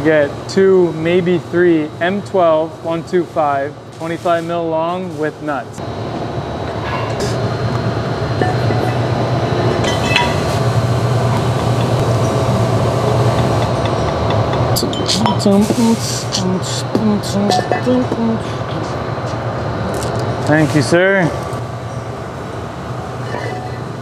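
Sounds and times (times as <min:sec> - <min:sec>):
low machine hum: 0:00.0 - 0:24.0.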